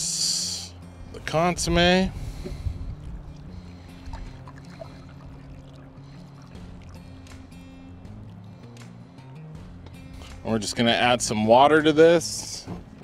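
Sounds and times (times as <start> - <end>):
background music with bass line: 0.0 - 13.0
thick liquid being poured: 3.3 - 7.2.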